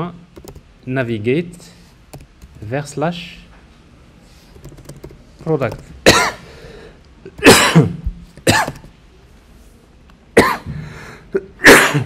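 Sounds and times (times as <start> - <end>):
man coughing: 6.0 - 6.5, 7.3 - 8.8, 10.4 - 12.0.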